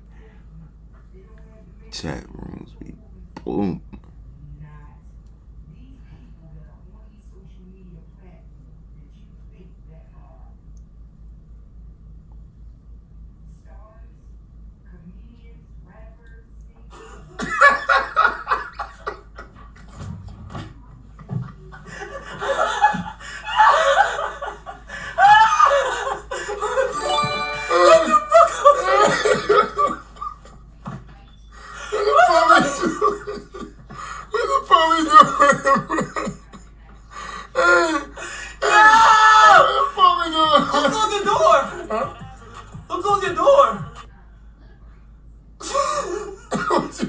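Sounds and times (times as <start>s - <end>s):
men laughing hard: 17.0s - 20.6s, 21.2s - 30.6s, 31.8s - 36.6s, 37.5s - 43.7s, 45.6s - 47.0s
person crying out loudly: 25.2s - 26.0s, 26.7s - 29.4s, 37.6s - 41.6s.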